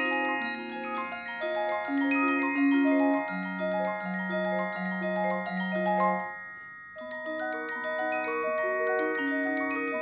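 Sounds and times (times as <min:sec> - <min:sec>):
mallet percussion ringing notes: 0:00.0 - 0:10.0.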